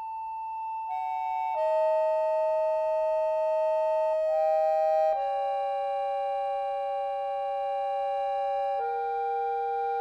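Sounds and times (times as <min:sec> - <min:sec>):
piano accordion holding notes: 0:04.4 - 0:10.0.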